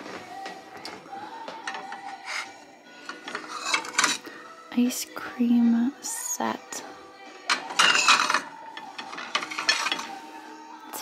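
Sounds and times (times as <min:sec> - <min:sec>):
china plates handled: 0:01.6 - 0:04.3, 0:07.4 - 0:10.2.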